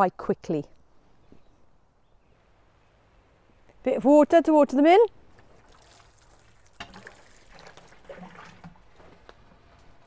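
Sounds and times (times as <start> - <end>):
water trickling onto compost: 5.2 - 10.0.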